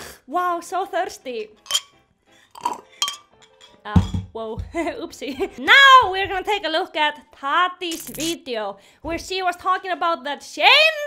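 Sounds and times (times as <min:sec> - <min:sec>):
sharp glass clink: 0:01.7 - 0:01.9, 0:03.0 - 0:03.8.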